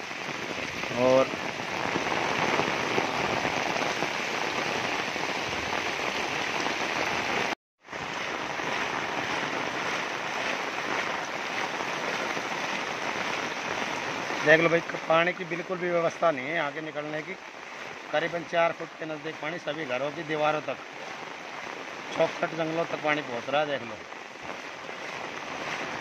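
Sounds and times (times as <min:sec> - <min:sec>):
heavy rain on standing water: 0:00.0 - 0:26.0.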